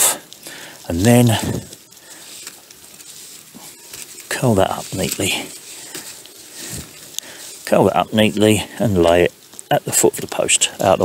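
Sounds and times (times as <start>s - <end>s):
rope rustling and scraping: 0.0s - 11.0s.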